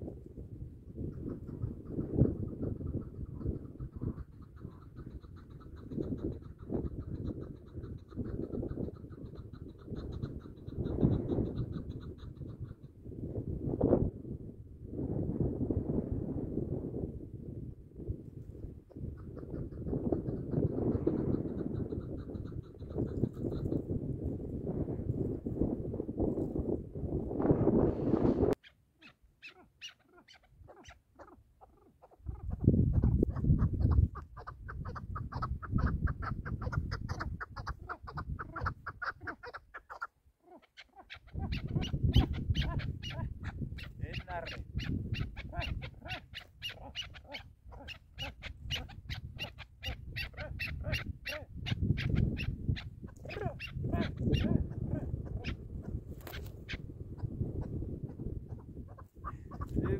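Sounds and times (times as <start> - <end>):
partridge calling: 1.1 - 13.0, 18.9 - 23.9, 28.6 - 59.9.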